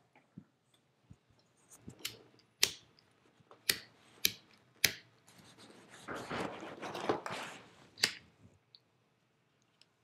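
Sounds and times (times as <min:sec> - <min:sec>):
rustling scraping noise: 0:05.3 - 0:07.9.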